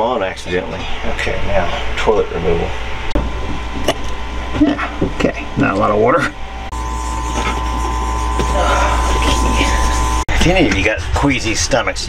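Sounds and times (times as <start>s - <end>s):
machine hum with whine: 2.8s - 10.7s.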